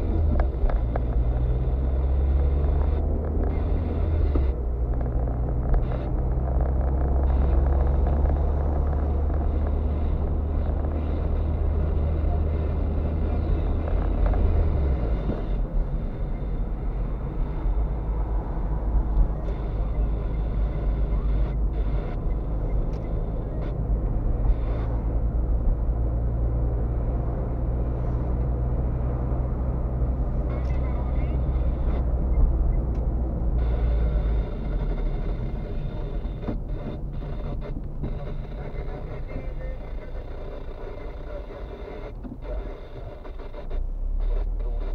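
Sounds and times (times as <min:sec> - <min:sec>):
car engine drone: 0:00.0 - 0:44.9
tyre and road rumble: 0:00.0 - 0:44.9.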